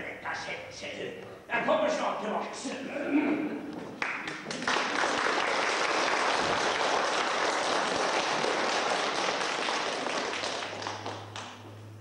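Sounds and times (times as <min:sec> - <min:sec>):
audience applauding: 0:04.0 - 0:11.8.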